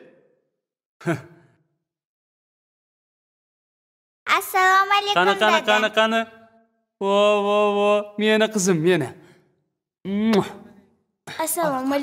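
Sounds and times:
children calling out greetings: 0:04.4 - 0:06.1.

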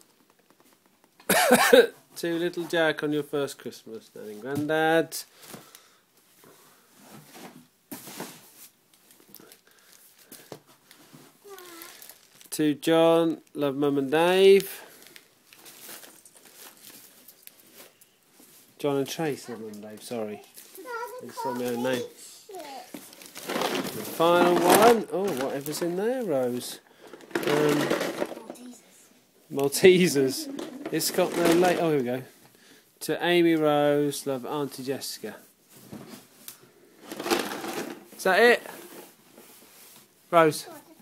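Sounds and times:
wrapping paper rustling: 0:08.9 - 0:12.5, 0:14.8 - 0:18.6, 0:20.4 - 0:28.5
wrapping paper tearing and crumpling: 0:11.4 - 0:12.5, 0:22.5 - 0:25.8.

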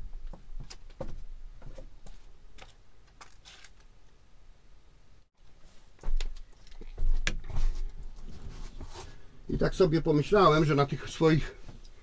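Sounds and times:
clothing rustle: 0:05.4 - 0:09.4.

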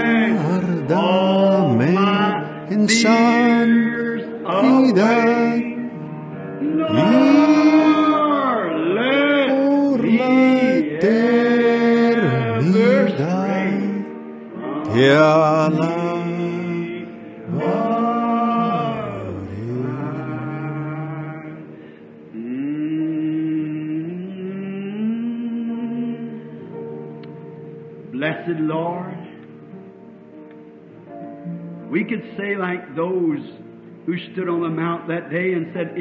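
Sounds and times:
man singing slow tune: 0:00.0 - 0:26.7.

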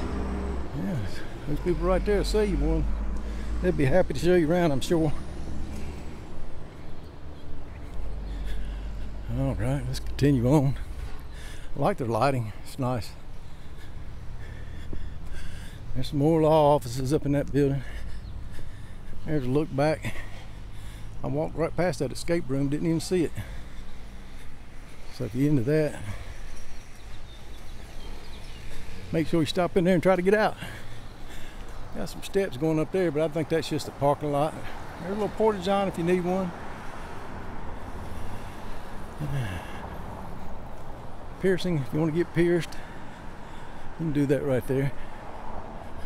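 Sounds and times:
vehicle passing on road: 0:00.0 - 0:46.0.

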